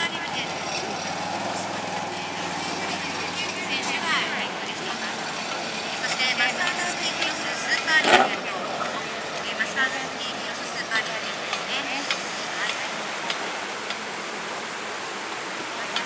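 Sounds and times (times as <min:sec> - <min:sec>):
quad bike engine humming: 0:00.0 - 0:16.0
voices: 0:00.0 - 0:16.0.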